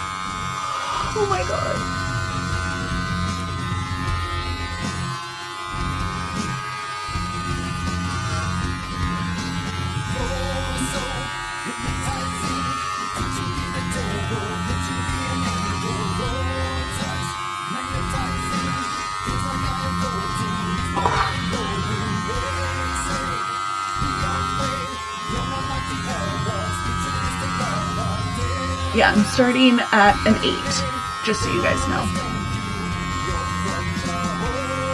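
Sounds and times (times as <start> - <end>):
electric hair clippers buzzing: 0.0 - 34.9
music with singing: 0.0 - 34.9.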